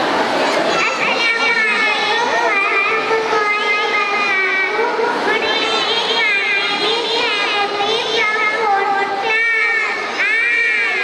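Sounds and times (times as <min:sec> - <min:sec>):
audience chatter: 0:00.0 - 0:11.0
child's voice through loudspeakers: 0:00.0 - 0:11.0.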